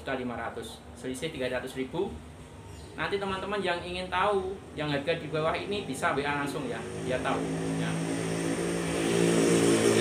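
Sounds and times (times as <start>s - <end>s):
motor droning: 6.4s - 10.0s.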